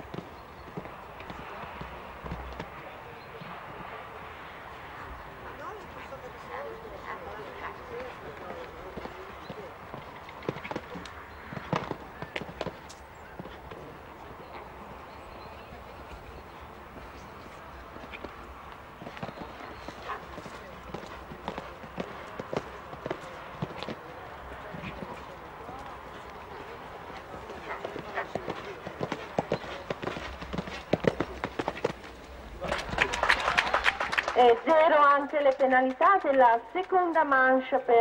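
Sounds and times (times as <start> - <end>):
horse cantering on sand: 0.0 - 33.0.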